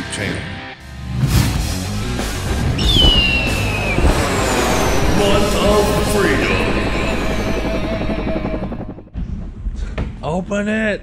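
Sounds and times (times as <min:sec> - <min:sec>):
helicopter rotor chop: 0:02.9 - 0:09.2
intro music: 0:03.2 - 0:09.1.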